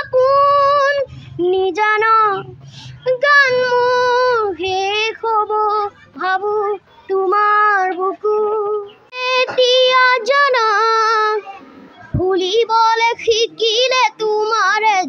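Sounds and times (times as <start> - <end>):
boy singing unaccompanied: 0.0 - 15.0.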